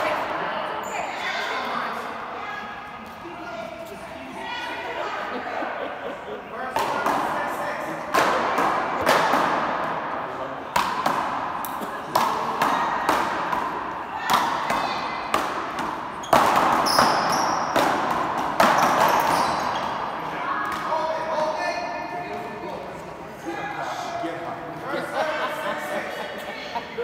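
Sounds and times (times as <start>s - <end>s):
ball smacking wall and floor: 12.2s - 20.0s.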